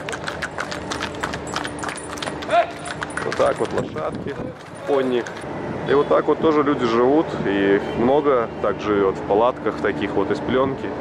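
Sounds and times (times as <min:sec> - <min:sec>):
horse hooves on asphalt: 0:00.0 - 0:05.5.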